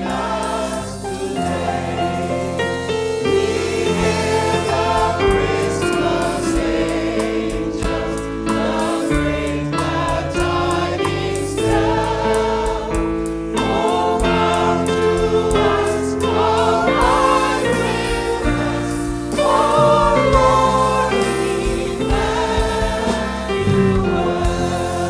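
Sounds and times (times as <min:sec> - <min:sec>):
choir singing a carol: 0:00.0 - 0:25.0
low bass notes: 0:00.0 - 0:25.0.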